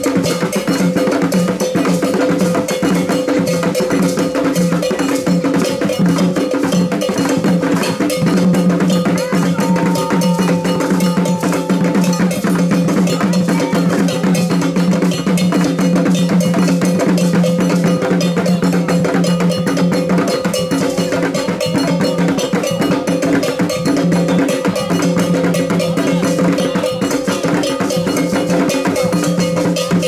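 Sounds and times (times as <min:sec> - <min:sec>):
hand drums playing dance rhythm: 0:00.0 - 0:30.0
metal bell ringing: 0:00.0 - 0:30.0.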